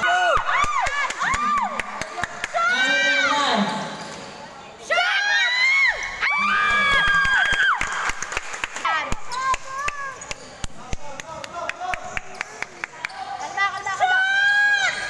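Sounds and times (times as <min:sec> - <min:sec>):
sneakers squeaking on court: 0:09.2 - 0:10.8.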